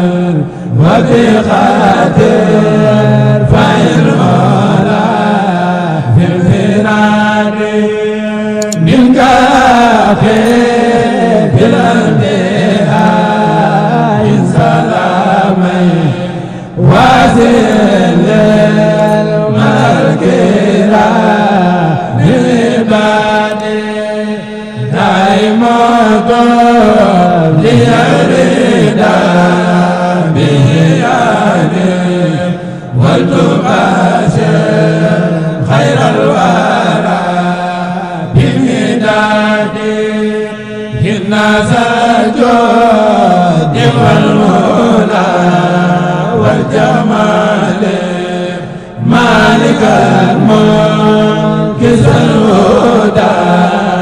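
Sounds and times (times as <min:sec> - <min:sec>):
man chanting into microphone: 0:00.0 - 0:54.0.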